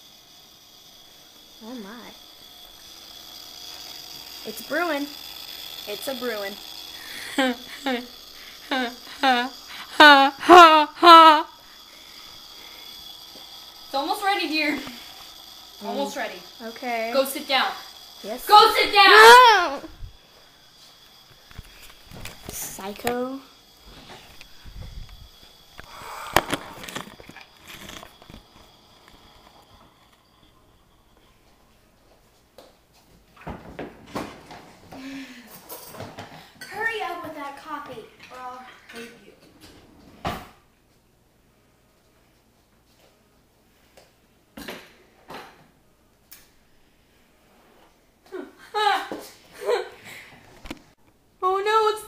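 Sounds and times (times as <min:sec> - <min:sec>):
coffee maker pump whirring: 0:00.0 - 0:32.7, 0:33.4 - 0:39.6
coffee streaming into mug: 0:25.6 - 0:31.4.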